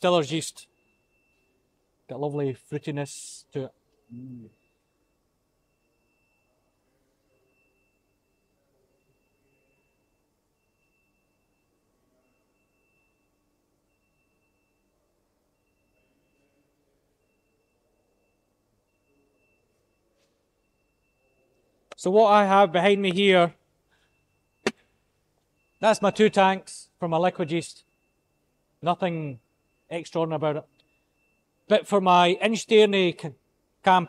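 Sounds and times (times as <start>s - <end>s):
faint pulsing high tone: 3.7s - 21.9s.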